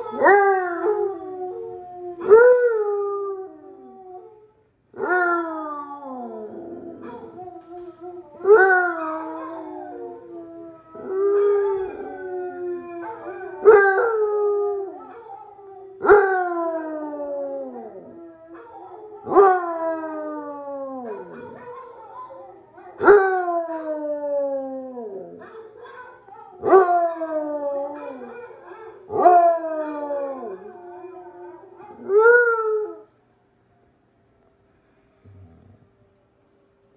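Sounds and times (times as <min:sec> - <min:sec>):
dog howling: 0:00.0 - 0:04.4, 0:05.0 - 0:33.1
steady low tone: 0:35.0 - 0:36.2.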